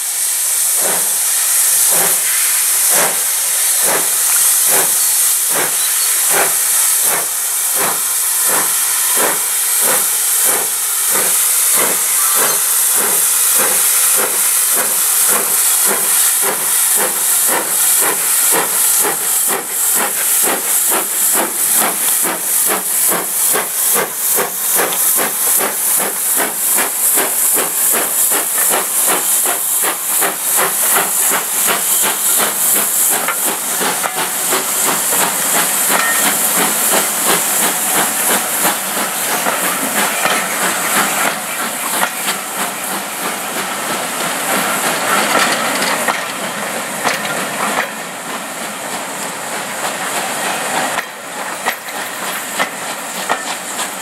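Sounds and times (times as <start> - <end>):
loud steam hiss: 0.0 - 54.0
steam locomotive exhaust beats: 0.0 - 54.0.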